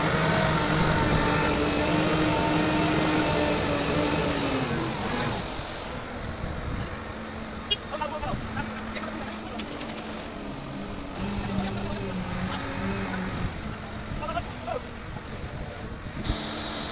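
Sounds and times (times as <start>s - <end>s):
diesel engine revving: 0.0s - 16.9s.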